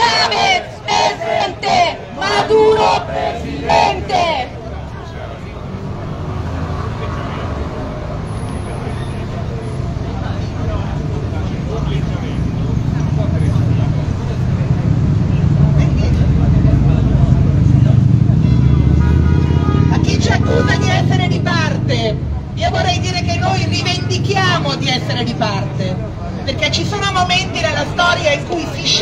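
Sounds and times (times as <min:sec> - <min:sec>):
heavy vehicle rumbling past: 0:00.0 - 0:26.6
woman speaking through loudspeaker: 0:19.9 - 0:25.9, 0:26.5 - 0:29.0.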